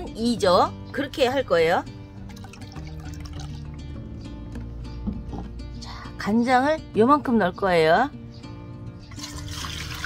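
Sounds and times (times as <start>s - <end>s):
soft background music: 0.0s - 10.0s
liquid pouring into metal bowl: 2.2s - 3.8s, 9.1s - 10.0s.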